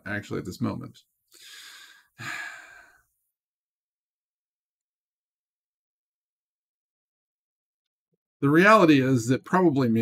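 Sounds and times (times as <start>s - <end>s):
man sighing: 1.4s - 3.0s.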